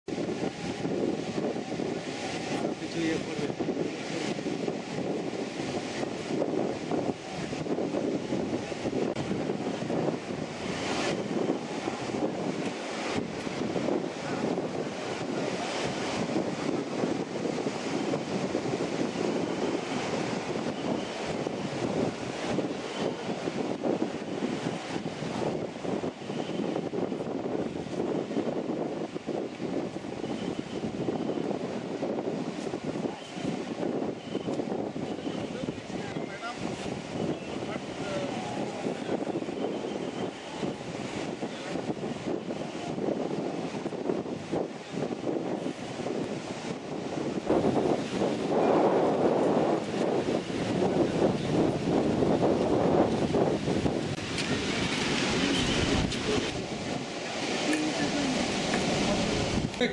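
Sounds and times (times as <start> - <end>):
wind buffeting microphone: 0.0 - 59.9
murmur of crowd voices: 35.0 - 41.9, 54.2 - 59.9.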